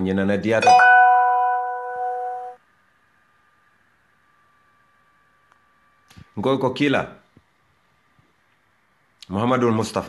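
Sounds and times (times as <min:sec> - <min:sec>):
faint steady high tone: 0:00.6 - 0:02.6.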